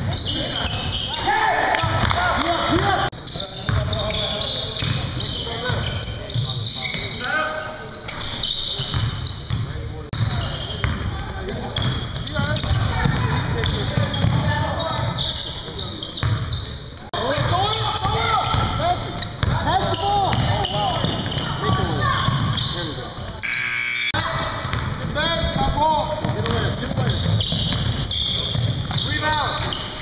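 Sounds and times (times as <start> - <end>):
players' voices echoing: 0.0 - 30.0
sneakers squeaking on gym floor: 0.0 - 30.0
basketball bouncing: 1.7 - 3.0, 8.8 - 11.1, 11.8 - 15.1, 17.3 - 30.0.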